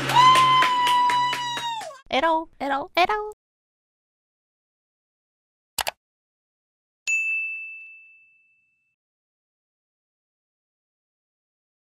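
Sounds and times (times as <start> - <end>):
bright bell-like notification ding: 7.1 - 8.9.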